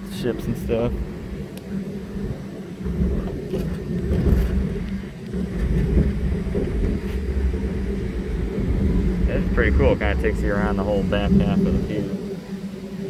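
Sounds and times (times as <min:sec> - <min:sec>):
ride car rumbling on track: 0:00.0 - 0:12.4.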